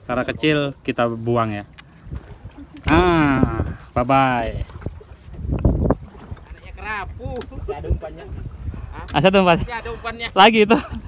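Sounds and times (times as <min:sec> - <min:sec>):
choppy sea water: 0:00.0 - 0:11.0
wind rumble: 0:01.9 - 0:10.1.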